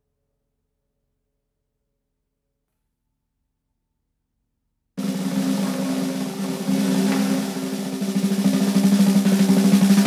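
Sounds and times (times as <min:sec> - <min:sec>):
snare drum roll: 0:05.0 - 0:10.0.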